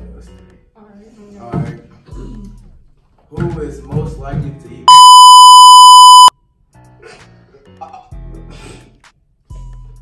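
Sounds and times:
high-pitched censor bleep: 0:04.9 - 0:06.3.

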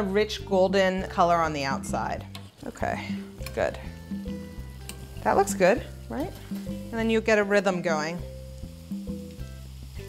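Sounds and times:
background music with bass line: 0:00.0 - 0:10.0
batter sizzling in hot oil: 0:01.1 - 0:10.0.

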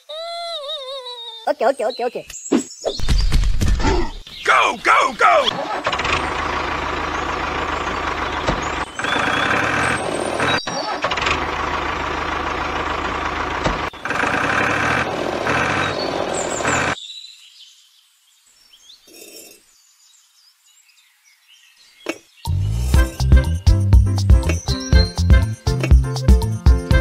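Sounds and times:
tractor engine running: 0:04.9 - 0:17.0.

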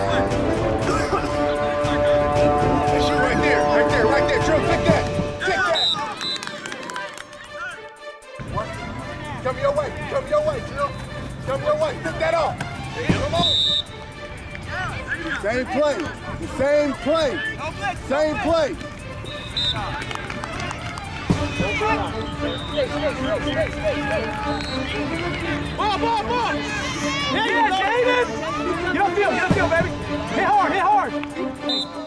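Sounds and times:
faint music: 0:00.0 - 0:32.0
voices shouting: 0:08.4 - 0:32.0
people calling out: 0:21.5 - 0:29.4.

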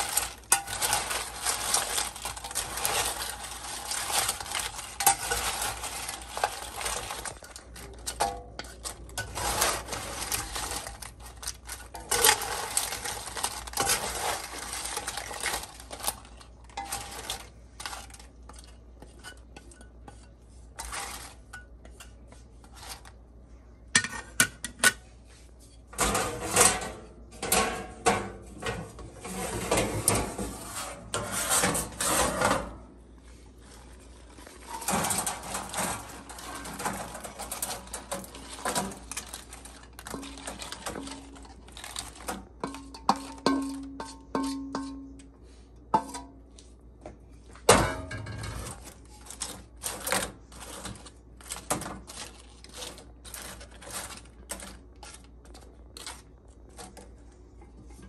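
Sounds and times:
fried chips rattling: 0:00.0 - 0:18.6, 0:33.8 - 0:44.0, 0:48.4 - 0:57.0
chips clattering in mesh basket: 0:00.0 - 0:18.7, 0:34.3 - 0:44.7, 0:47.7 - 0:57.1
spatula scraping in a wok: 0:00.0 - 0:23.2, 0:28.8 - 0:46.7.

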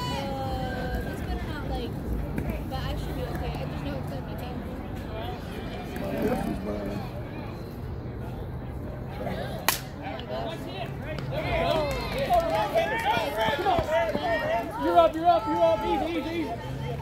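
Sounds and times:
people shouting and yelling: 0:00.0 - 0:01.4, 0:09.1 - 0:17.0.

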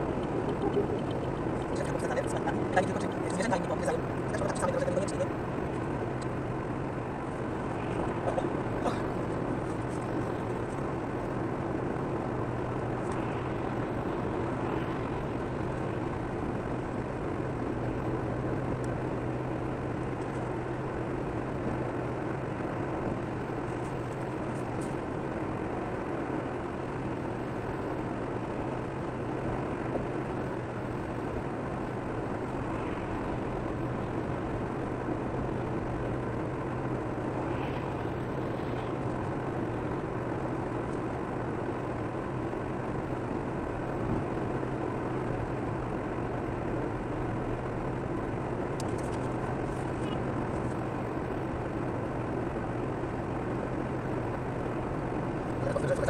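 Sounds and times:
low engine hum: 0:00.0 - 0:56.0.

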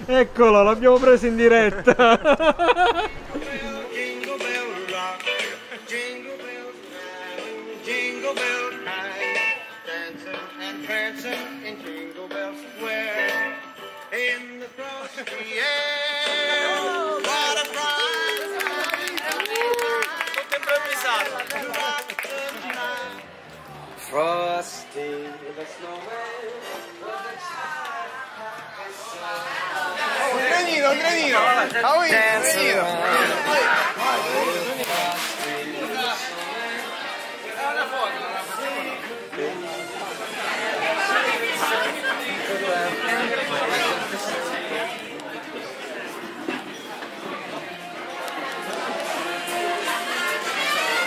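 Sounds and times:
group of voices talking: 0:00.0 - 0:13.8, 0:15.2 - 0:51.0
crowd chatter: 0:00.0 - 0:51.0
hand claps: 0:17.2 - 0:23.0.

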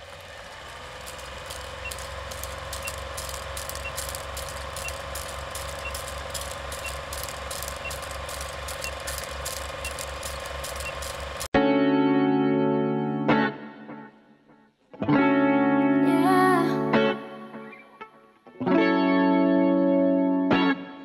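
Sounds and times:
film projector clatter: 0:00.0 - 0:11.5
low pulsing hum: 0:00.0 - 0:11.5.

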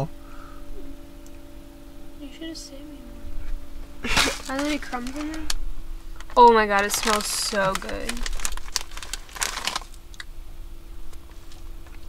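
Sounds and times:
foil chip bag crinkling: 0:04.1 - 0:05.6, 0:06.2 - 0:10.2.

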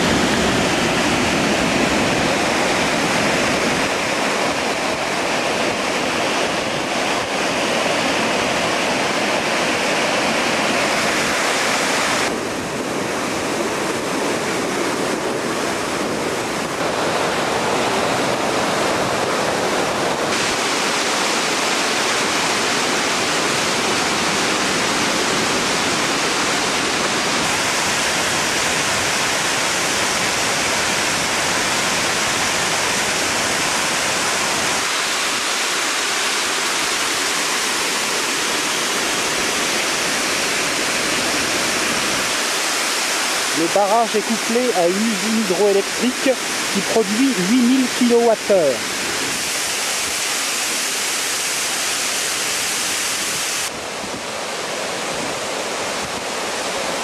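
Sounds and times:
water rushing over dam: 0:00.0 - 0:57.0.

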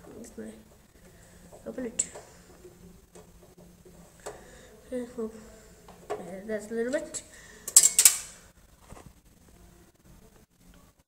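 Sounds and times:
screwdriver clicking and scraping on metal: 0:07.7 - 0:08.4.

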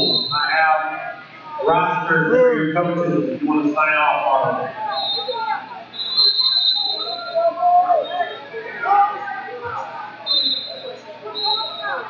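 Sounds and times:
whistle long blast: 0:00.0 - 0:00.5, 0:04.9 - 0:08.5
voices shouting: 0:00.0 - 0:02.1, 0:03.6 - 0:12.0.

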